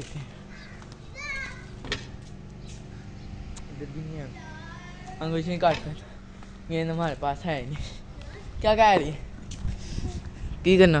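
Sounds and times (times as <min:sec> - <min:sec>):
steady low hum: 0:00.0 - 0:11.0
child calling out: 0:00.5 - 0:01.7, 0:04.4 - 0:05.3.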